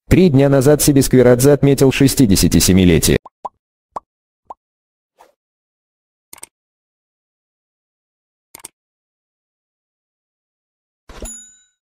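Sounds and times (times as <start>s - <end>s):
bright bell ding: 11.2s - 11.8s.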